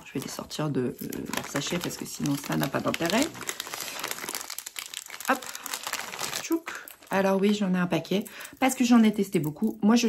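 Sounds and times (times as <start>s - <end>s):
packaging bag crinkling: 0.0s - 7.8s.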